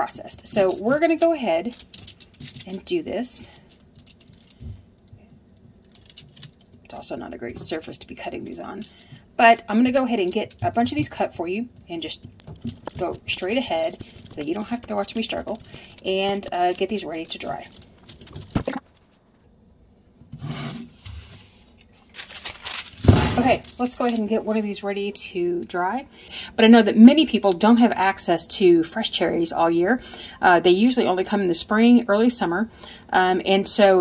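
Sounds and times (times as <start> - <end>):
handling rustles and clicks: 0.4 - 19.3, 22.0 - 24.5.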